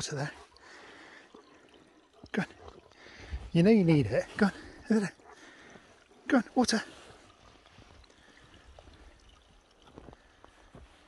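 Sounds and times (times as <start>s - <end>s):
stream trickling among rocks: 0.0s - 11.0s.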